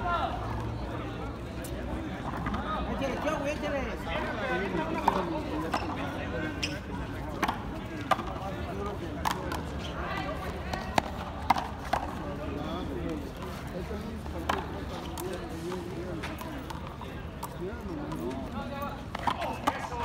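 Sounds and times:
spectators chatting: 0:00.0 - 0:20.0.

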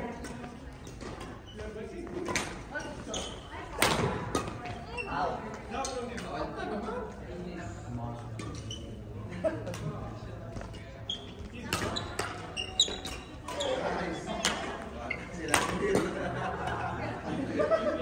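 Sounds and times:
rackets striking shuttlecock: 0:03.8 - 0:04.8, 0:11.7 - 0:13.7, 0:14.3 - 0:14.8, 0:15.5 - 0:16.2.

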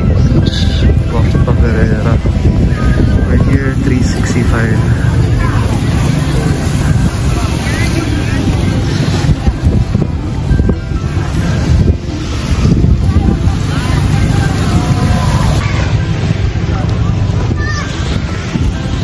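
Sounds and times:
background music: 0:00.0 - 0:19.0
people's voices: 0:00.0 - 0:19.0
wind buffeting microphone: 0:00.0 - 0:19.0.

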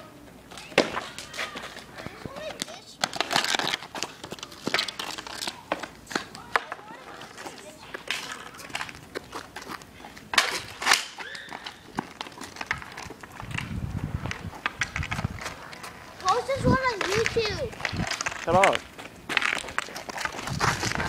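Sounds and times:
voices calling out: 0:00.0 - 0:14.7, 0:15.3 - 0:20.1
hockey sticks and ball clacking: 0:00.5 - 0:13.7, 0:14.3 - 0:21.0.

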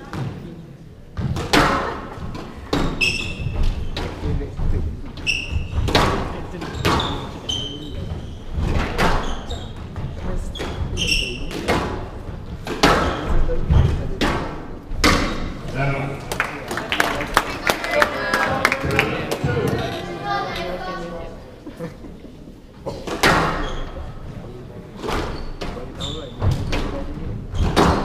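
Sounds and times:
squash ball hitting rackets and walls: 0:01.2 - 0:04.6, 0:05.2 - 0:15.7, 0:23.0 - 0:24.0, 0:25.0 - 0:28.0
shoe squeaks on wooden floor: 0:02.8 - 0:04.0, 0:05.2 - 0:06.0, 0:06.6 - 0:11.8, 0:23.2 - 0:24.3, 0:25.1 - 0:28.0.

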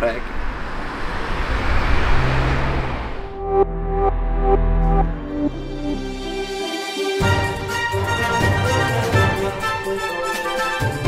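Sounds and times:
car passing by: 0:00.0 - 0:03.4
low engine hum: 0:00.0 - 0:05.0.

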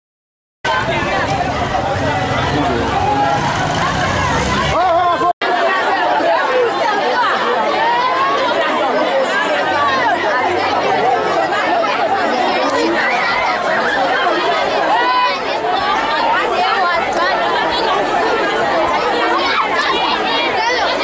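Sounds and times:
schoolchildren talking and calling out: 0:00.7 - 0:21.0.

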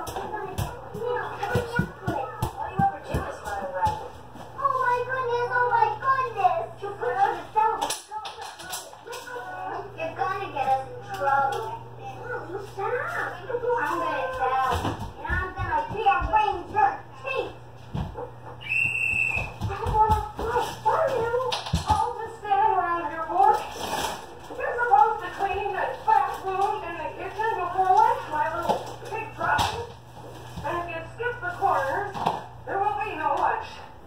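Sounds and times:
indistinct voices talking: 0:00.0 - 0:23.7.

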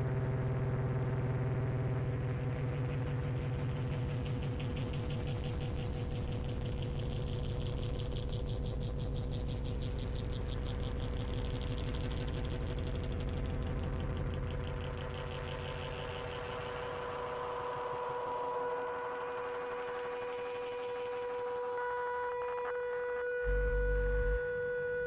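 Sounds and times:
steady electronic held tone: 0:17.4 - 0:25.0
higher electronic held tones: 0:21.8 - 0:25.0
fast pulsing low throb: 0:23.4 - 0:24.4.

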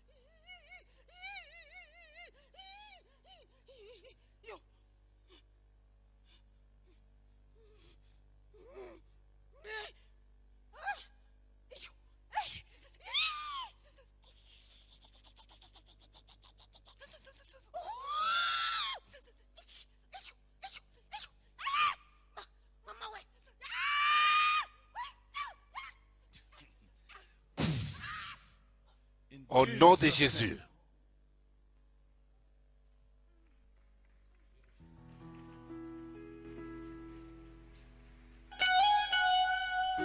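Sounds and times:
person's breathy cry: 0:07.6 - 0:10.1.

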